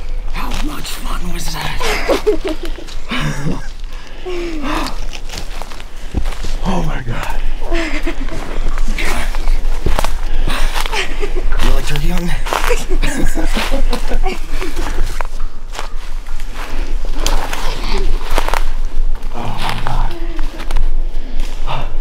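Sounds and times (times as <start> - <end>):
footsteps crunching through dry leaves: 4.9 - 6.9, 11.6 - 20.8.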